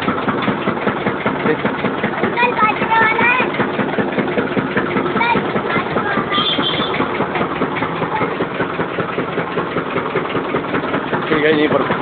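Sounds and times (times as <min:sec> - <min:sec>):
juice crushing machine engine running: 0:00.0 - 0:12.0.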